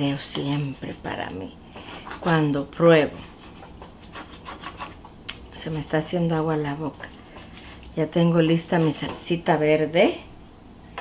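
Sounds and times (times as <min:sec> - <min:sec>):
spatula scraping cast-iron skillet: 0:06.9 - 0:09.4.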